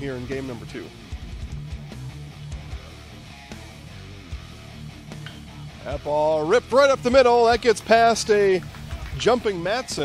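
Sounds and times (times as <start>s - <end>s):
low bass line: 0.0s - 9.6s
background guitar music: 0.0s - 10.0s.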